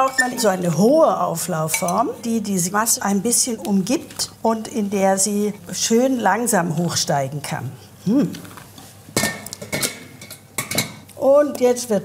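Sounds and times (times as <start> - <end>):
utensils knocking on metal pans: 1.6 - 2.1, 9.2 - 11.1.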